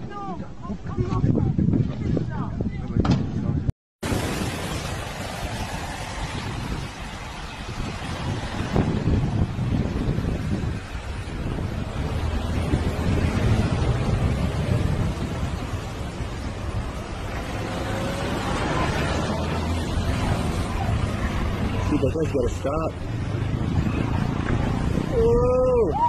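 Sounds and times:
wind rumbling on microphone: 0.0 - 26.0.

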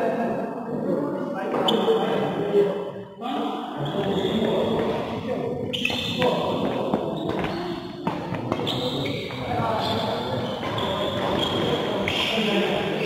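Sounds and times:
people's voices: 0.0 - 13.0.

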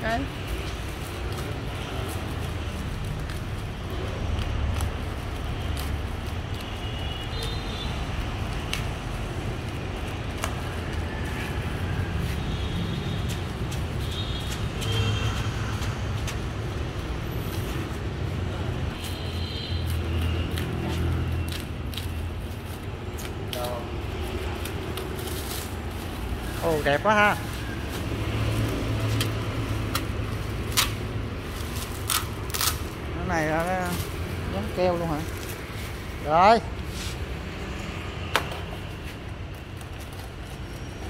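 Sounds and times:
plastic wrap crinkling and tearing: 19.8 - 36.2.

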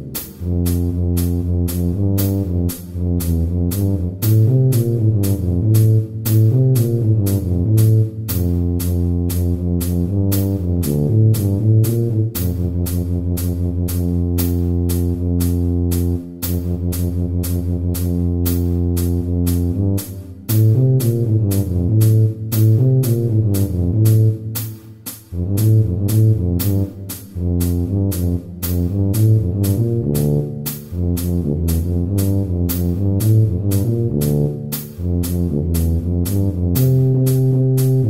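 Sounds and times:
steady percussion click: 0.0 - 38.0
tuba playing a melody: 0.0 - 38.0.

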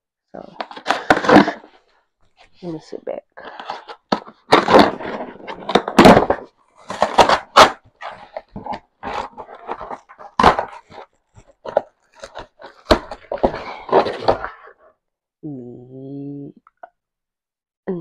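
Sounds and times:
cardboard and tape crackling: 0.6 - 2.5, 3.4 - 14.8
scissors cutting cardboard box: 3.5 - 14.7.

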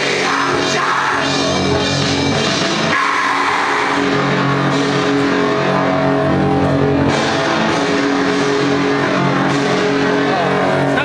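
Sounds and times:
distorted droning chord: 0.0 - 11.0.

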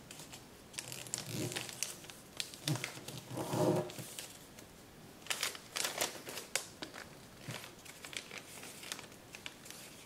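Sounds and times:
paper crinkling and rustling: 0.1 - 10.0.

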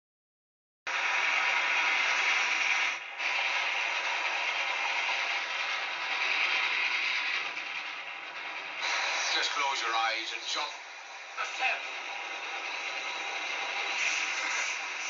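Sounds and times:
steam locomotive wheels clattering: 0.9 - 15.0.

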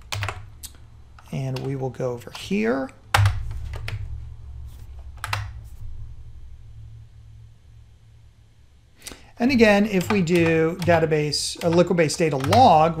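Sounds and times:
low hum: 0.0 - 13.0
keyboard keystroke clicks: 1.2 - 4.0, 9.9 - 13.0.

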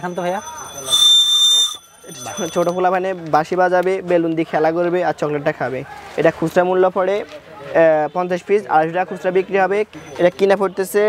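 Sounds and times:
high-pitched toy whistle: 0.0 - 2.8.

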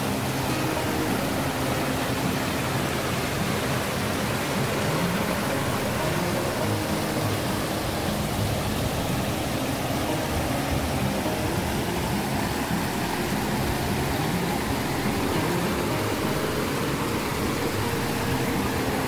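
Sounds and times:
river rushing over boulders: 0.0 - 19.0.

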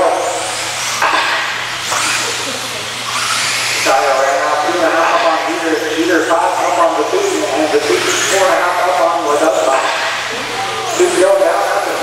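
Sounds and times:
announcer speaking: 0.0 - 0.3, 3.8 - 12.0
rc cars hissing rush: 0.0 - 12.0.

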